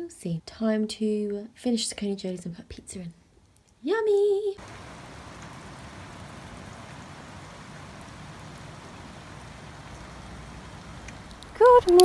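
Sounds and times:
steady rain falling: 0:04.6 - 0:12.0.

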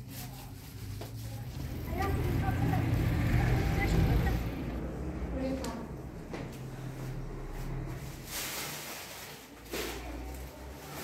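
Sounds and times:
faint voices: 0:00.0 - 0:06.3
road traffic rumble: 0:00.0 - 0:11.0.

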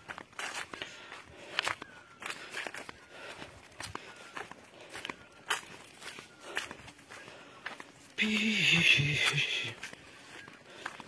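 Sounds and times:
footsteps on leafy dirt trail: 0:00.0 - 0:11.0.

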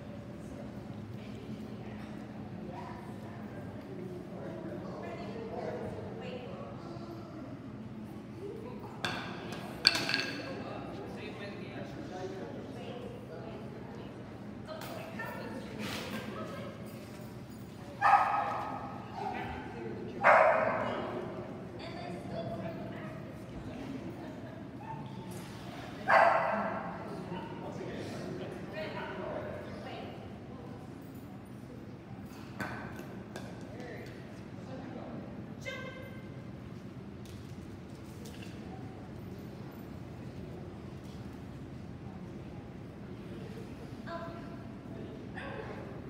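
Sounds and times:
indistinct voices in echoing hall: 0:00.0 - 0:46.0
dog barking with echo: 0:20.2 - 0:20.9.

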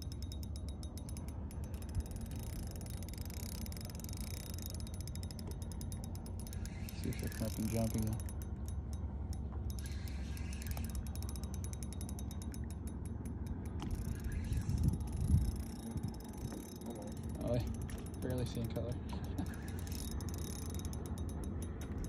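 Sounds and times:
fishing reel clicking rapidly: 0:00.0 - 0:08.8, 0:09.4 - 0:22.0
steady low rumble: 0:00.0 - 0:22.0.

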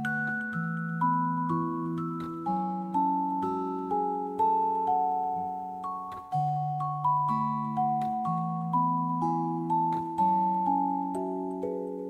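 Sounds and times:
gentle melody of struck notes: 0:00.0 - 0:12.0.

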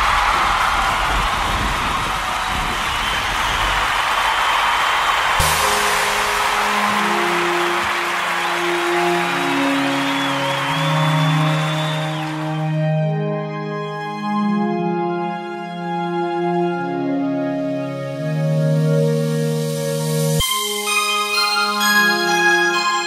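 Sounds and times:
slow held synth notes: 0:05.4 - 0:21.0.

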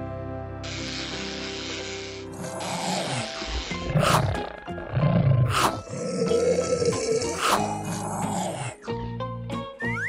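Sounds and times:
background music: 0:00.0 - 0:10.0
growling roar: 0:02.3 - 0:08.8.

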